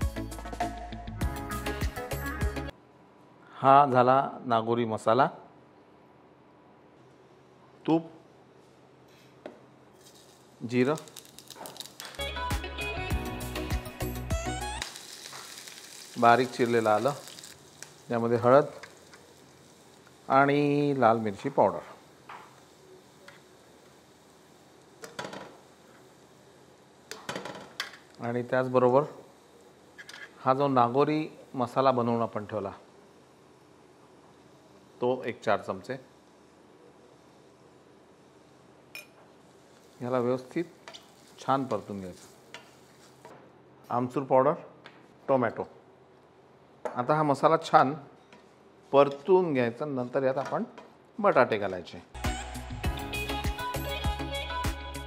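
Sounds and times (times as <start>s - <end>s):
background music with beat: 0.0s - 2.7s, 12.1s - 14.8s, 52.2s - 55.0s
chillies sizzling in hot oil: 9.9s - 43.3s.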